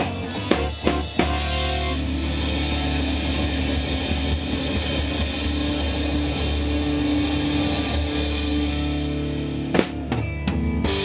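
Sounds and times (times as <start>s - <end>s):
electric guitar ringing: 0.0s - 11.0s
live rock band playing: 0.0s - 11.0s.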